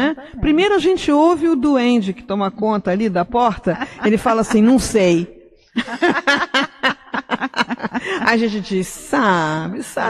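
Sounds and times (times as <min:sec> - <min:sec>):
women laughing: 0:03.6 - 0:05.1, 0:05.8 - 0:09.0.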